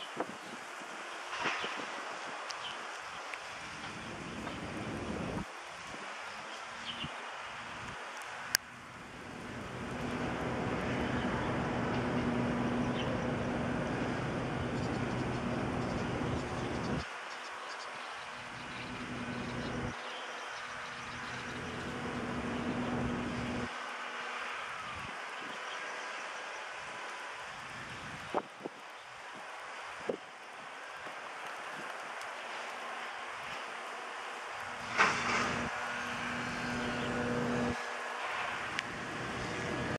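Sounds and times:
vehicle engine rumble: 8.7s - 17.1s, 18.4s - 20.0s, 20.8s - 23.7s, 34.6s - 39.9s.

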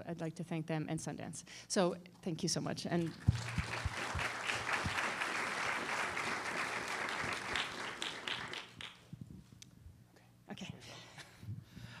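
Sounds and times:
audience applauding: 3.1s - 9.0s.

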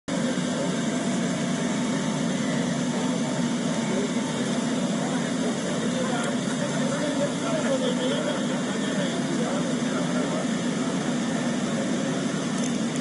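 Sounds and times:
low machinery drone: 0.1s - 13.0s.

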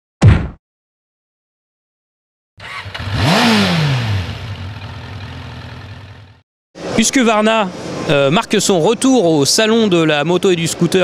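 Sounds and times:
engine revving: 2.6s - 6.4s.

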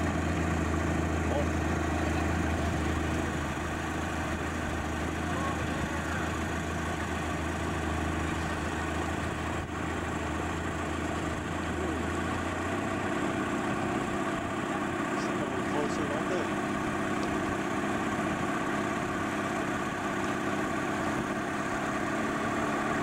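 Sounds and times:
motorboat engine droning: 0.0s - 23.0s.

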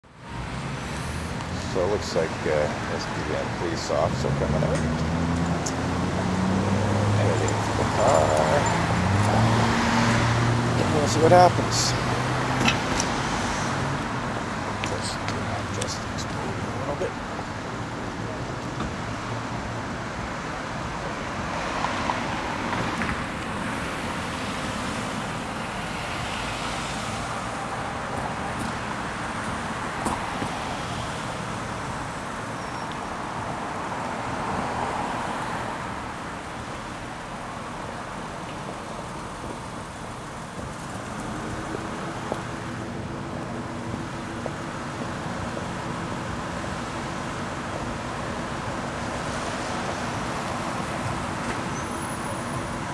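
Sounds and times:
cars passing: 0.0s - 52.9s.

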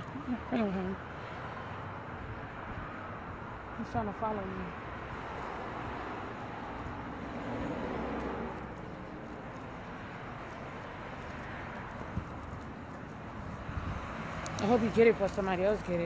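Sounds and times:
road traffic: 0.0s - 16.0s.

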